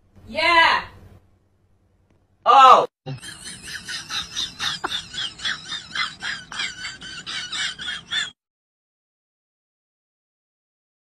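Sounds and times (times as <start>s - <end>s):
high-pitched squealing laughter: 3.2s - 8.4s.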